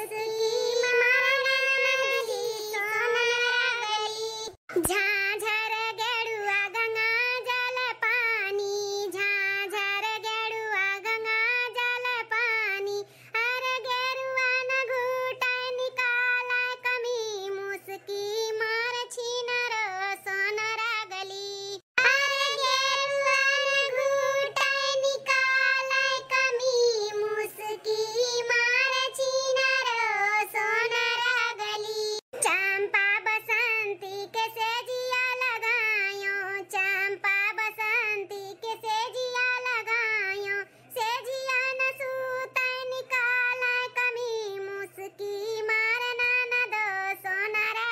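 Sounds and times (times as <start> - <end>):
high-pitched cartoon voice singing: 0.0 - 9.3.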